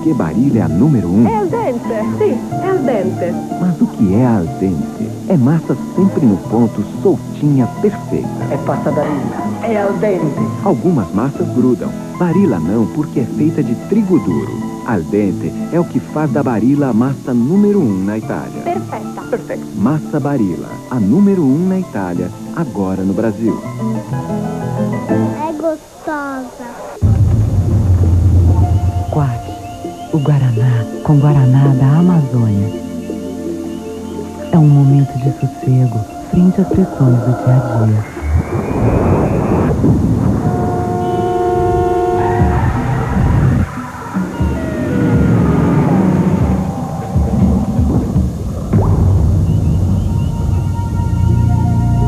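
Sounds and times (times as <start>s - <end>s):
commercial music: 0.0s - 25.5s, 27.0s - 52.0s
busy sound effects: 25.1s - 52.0s
loud deep rumble: 27.0s - 30.8s, 36.2s - 52.0s.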